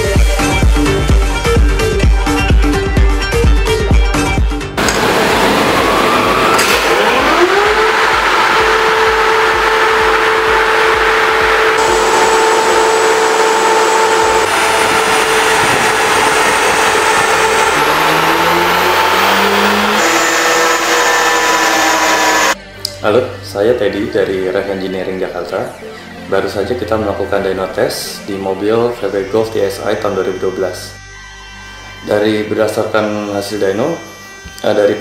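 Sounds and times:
car engine revving with whine: 4.8 - 22.6.

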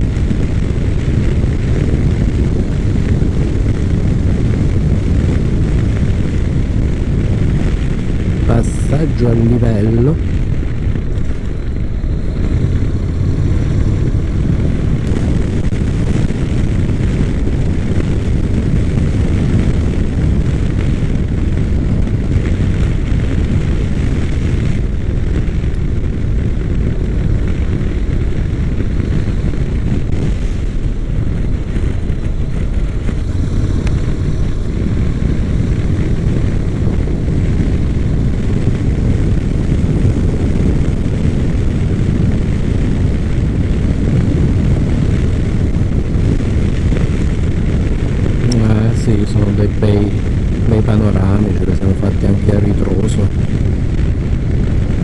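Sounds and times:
motorcycle engine drone: 0.0 - 55.0
wind and road noise: 0.0 - 55.0.

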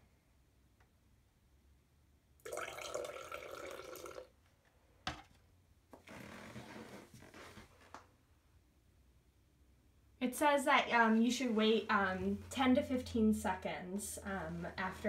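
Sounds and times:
liquid pouring into glass: 2.4 - 4.3.

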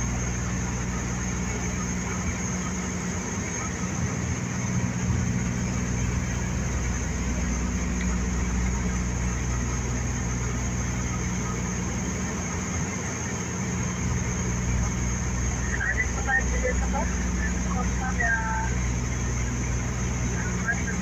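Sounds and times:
turboprop engines droning: 0.0 - 21.0.

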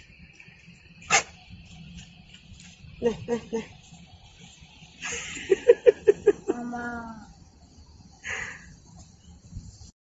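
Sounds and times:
animal bark: 1.1 - 1.4.

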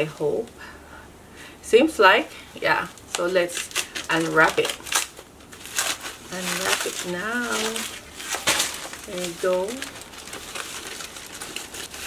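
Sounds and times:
packaging wrap crinkling: 2.8 - 12.0.

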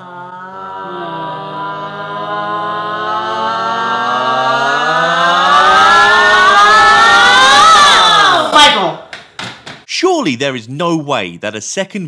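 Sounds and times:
held vocal note rising in pitch: 0.0 - 8.6.

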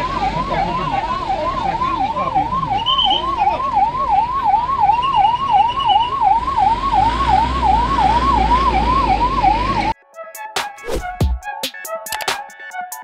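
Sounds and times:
ambulance siren yelping: 0.0 - 10.4.

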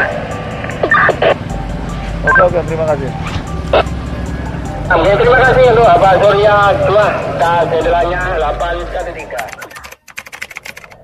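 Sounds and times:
low rumble: 0.0 - 9.1.

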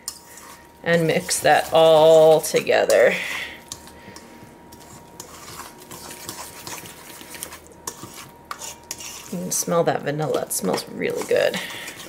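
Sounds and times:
utensil scraping metal bowl: 0.0 - 12.0.

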